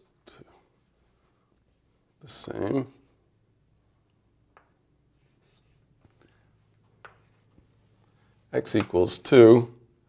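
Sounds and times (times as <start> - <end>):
writing on a board: 5.1 - 5.9, 7.0 - 9.0.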